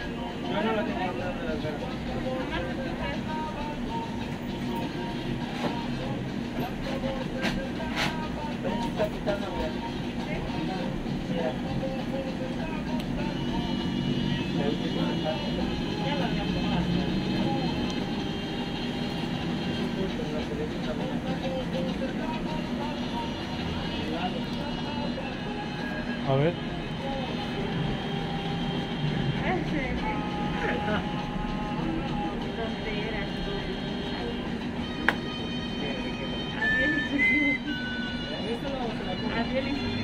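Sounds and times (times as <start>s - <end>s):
music: 0.0s - 40.0s.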